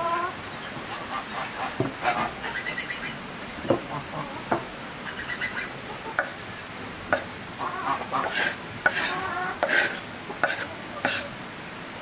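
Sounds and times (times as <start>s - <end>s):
farm fowl calling: 3.8s - 6.4s, 7.6s - 9.7s.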